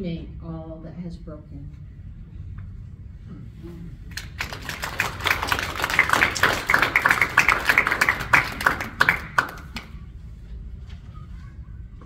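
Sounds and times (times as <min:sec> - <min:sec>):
audience applauding: 0:04.1 - 0:10.0.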